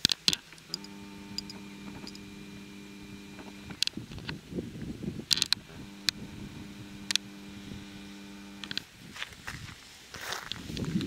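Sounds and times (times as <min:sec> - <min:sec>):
zoom motor hum: 0:00.6 - 0:08.9
camera clicks: 0:03.3 - 0:04.4, 0:05.3 - 0:06.3, 0:07.0 - 0:07.3, 0:08.5 - 0:08.9.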